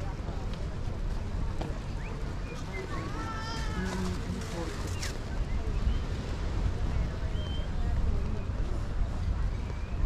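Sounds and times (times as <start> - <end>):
passers-by talking: 0.0 - 10.0
wind rumble on microphone: 0.0 - 10.0.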